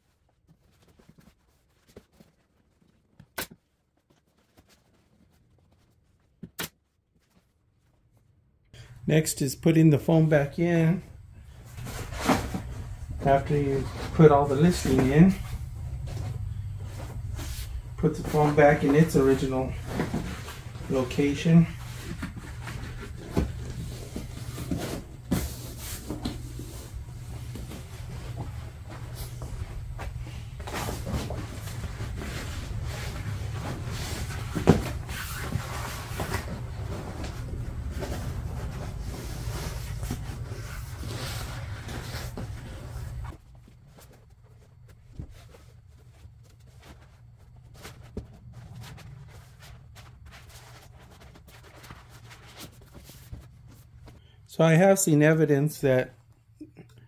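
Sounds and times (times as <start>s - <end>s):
steady low hum: 8.8s - 57.0s
vinyl cover rustling and creaking: 10.8s - 54.3s.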